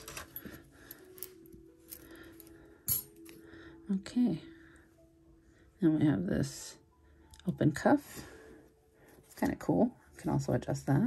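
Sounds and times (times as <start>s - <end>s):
metal bangles clinking: 0.0s - 3.4s.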